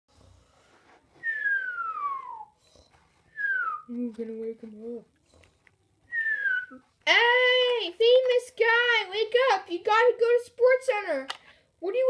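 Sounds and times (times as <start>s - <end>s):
person whistling falling notes: 1.2s - 2.6s, 3.3s - 4.0s, 6.1s - 6.8s.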